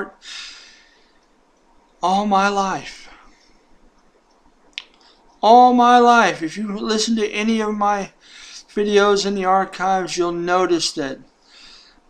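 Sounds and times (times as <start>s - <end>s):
man speaking: 0.0s - 0.6s, 2.0s - 3.3s, 5.4s - 11.2s.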